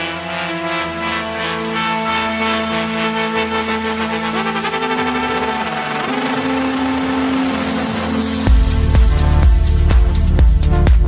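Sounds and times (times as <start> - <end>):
sustained synth tones: 0.0 - 10.9
noise sweep: 3.2 - 11.0
kick drum beat: 8.5 - 11.0.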